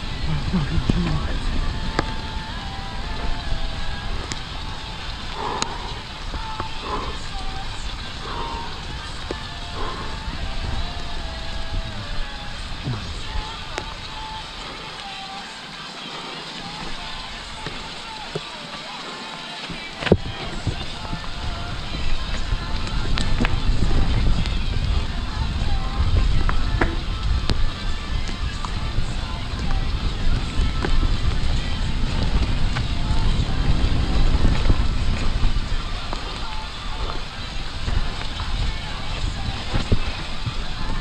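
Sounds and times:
bike rattling: 0:00.0 - 0:41.0
bike tyres rumbling on dirt: 0:00.0 - 0:41.0
wind on microphone: 0:00.0 - 0:41.0.

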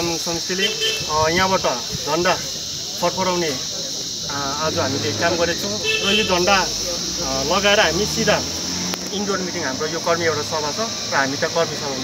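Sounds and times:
high-pitched hiss: 0:00.0 - 0:12.0.

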